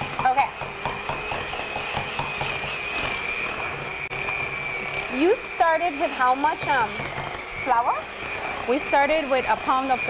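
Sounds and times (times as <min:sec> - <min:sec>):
electric hand mixer whining: 0:00.0 - 0:10.0.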